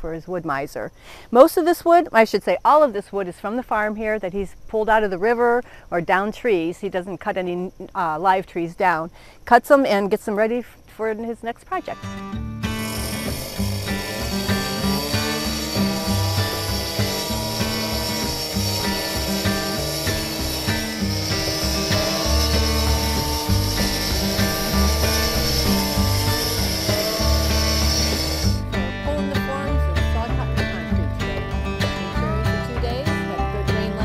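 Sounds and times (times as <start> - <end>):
cut-off saw cutting concrete: 12.6 - 29.6
background music with pulsing bass: 21.5 - 34.0.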